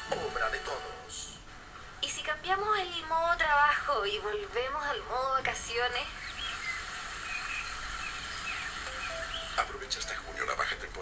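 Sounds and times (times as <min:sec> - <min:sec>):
steady outdoor hiss: 0:00.0 - 0:11.0
birds chirping: 0:05.2 - 0:11.0.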